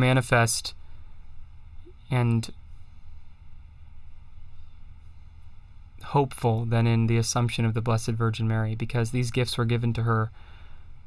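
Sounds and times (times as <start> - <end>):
faint low hum with hiss: 0.0 - 11.0.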